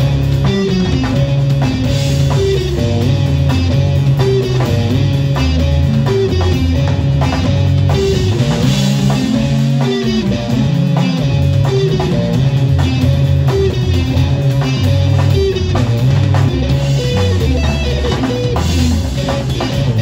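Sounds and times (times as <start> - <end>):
distorted electric guitar: 0.0 - 20.0
drum kit hits: 0.0 - 20.0
low bass notes: 0.0 - 20.0.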